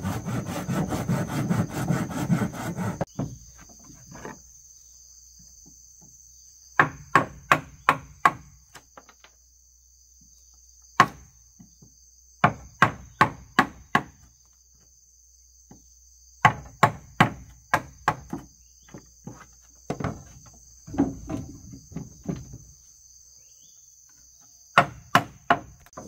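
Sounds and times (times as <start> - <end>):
insects trilling: 0.0 - 26.0.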